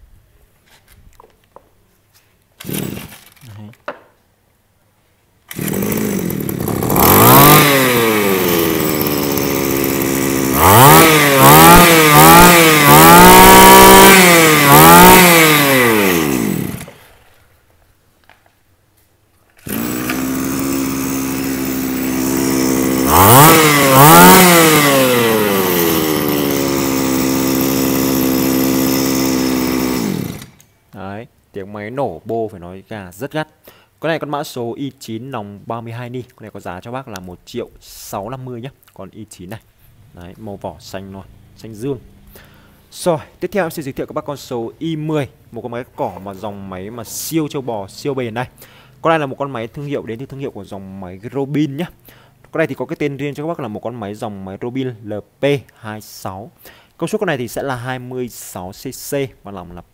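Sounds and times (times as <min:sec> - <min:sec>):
brushcutter engine revving: 0:02.6 - 0:03.3, 0:05.5 - 0:17.1, 0:19.6 - 0:30.7.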